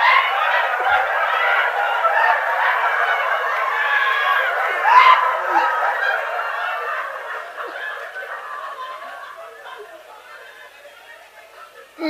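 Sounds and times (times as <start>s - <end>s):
high whoop of laughter: 0.0s - 10.9s
audience laughing: 0.0s - 12.0s.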